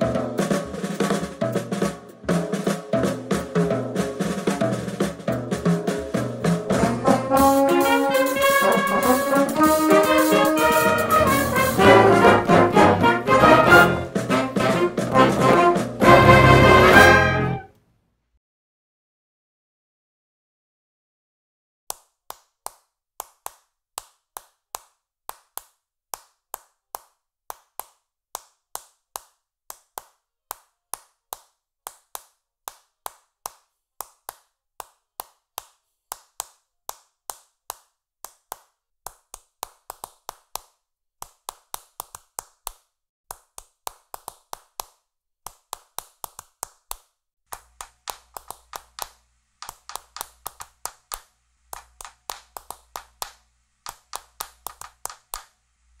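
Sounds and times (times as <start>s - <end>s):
hand claps in rhythm: 0.6s - 17.1s, 21.9s - 55.6s.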